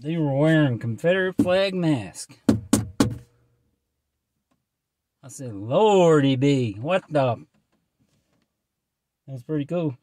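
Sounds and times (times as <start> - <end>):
man speaking: 0.0 - 2.4, 5.2 - 7.5, 9.3 - 10.0.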